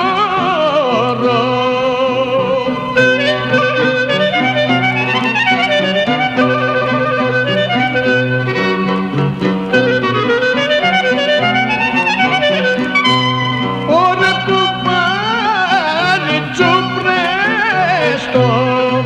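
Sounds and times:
low accompaniment: 0.0 - 19.0
folk clarinet playing: 2.4 - 19.0.

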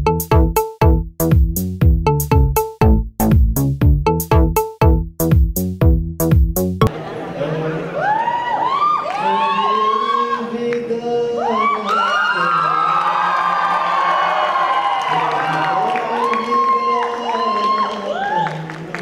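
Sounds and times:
audience cheering and whooping: 7.1 - 10.5, 11.4 - 18.9.

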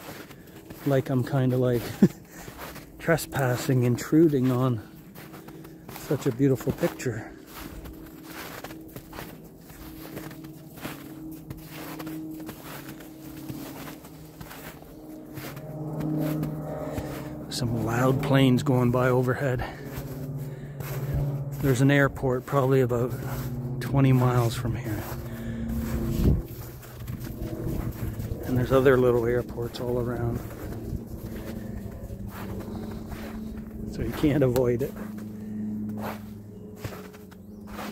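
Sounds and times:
aircraft droning overhead: 0.0 - 37.9
footsteps crunching through snow: 0.0 - 37.9.

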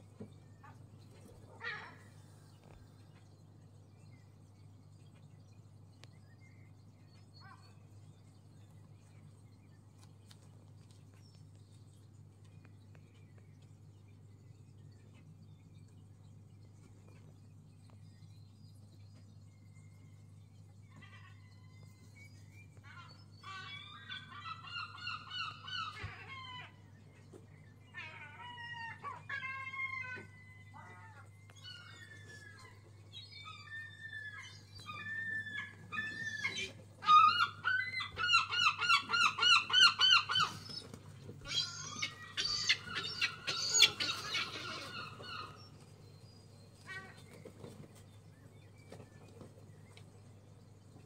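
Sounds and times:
birds honking calls: 0.6 - 2.8, 22.7 - 48.0.

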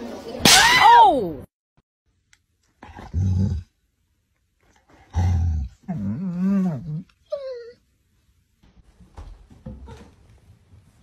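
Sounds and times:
dog growling: 5.0 - 7.2.

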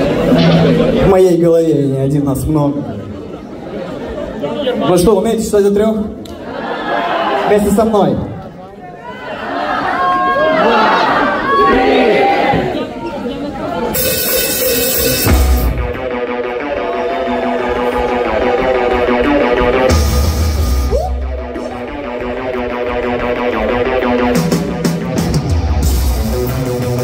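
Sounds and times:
burst of noise: 0.0 - 1.3
rock band with heavy bass: 0.0 - 1.4, 13.9 - 27.0
sustained synth chords: 0.0 - 1.4
voices shouting along: 9.0 - 12.9.

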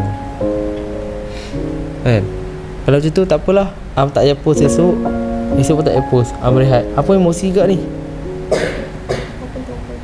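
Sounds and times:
background music with held notes: 0.0 - 10.0
person coughing: 8.5 - 9.5.

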